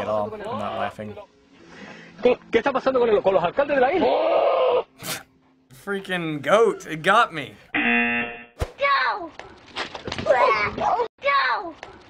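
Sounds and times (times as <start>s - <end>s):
electronic buzzer: 7.7s - 8.5s.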